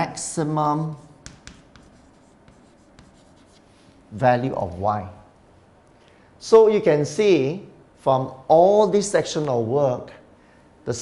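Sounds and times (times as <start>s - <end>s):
chalk scratching on chalkboard: 0.8s - 3.9s
chalk tapping on chalkboard: 0.9s - 3.7s.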